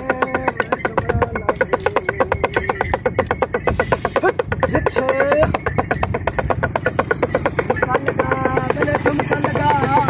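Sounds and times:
man singing: 0.0 - 3.2, 7.8 - 10.0
fast pulsing beat: 0.0 - 10.0.

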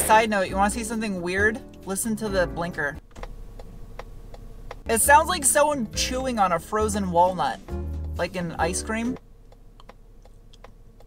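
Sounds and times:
turn signal ticking: 3.0 - 6.4, 7.2 - 11.0.

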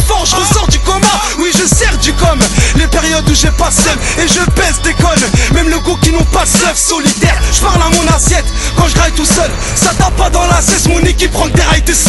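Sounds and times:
rapping over hip-hop beat: 0.0 - 12.0.

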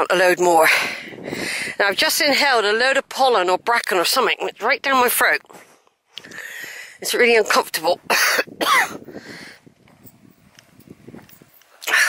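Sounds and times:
woman coughing hard: 8.1 - 9.0.

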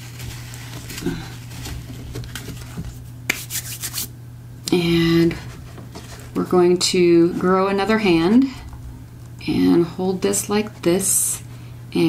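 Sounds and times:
hands rubbing fabric and paper: 0.0 - 4.1
steady low hum: 0.0 - 12.0.

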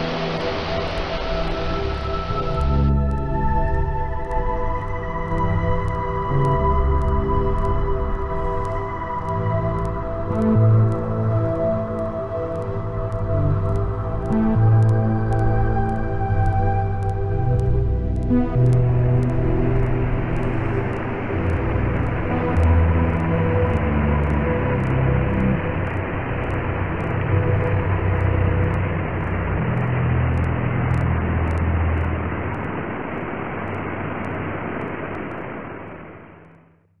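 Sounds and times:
waterfall rushing water: 0.0 - 2.9
faint music tones: 0.0 - 35.4
low rumble: 0.0 - 36.4.

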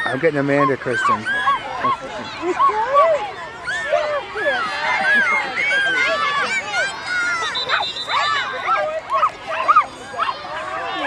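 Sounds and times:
children shouting: 0.0 - 11.0.

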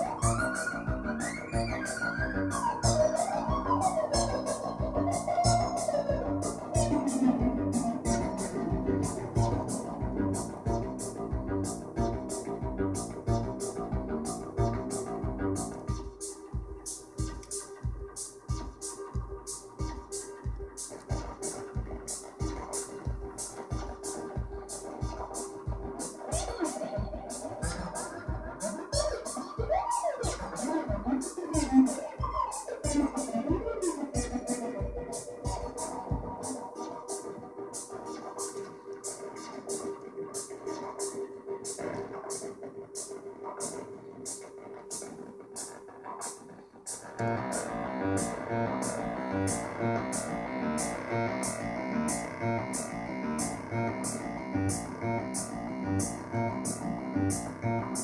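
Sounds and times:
low synthesizer kick pulses: 0.0 - 36.6, 47.2 - 58.0
pitched synthesizer glides: 0.0 - 45.7, 46.9 - 58.0
synthesizer drone tone: 0.0 - 58.0.

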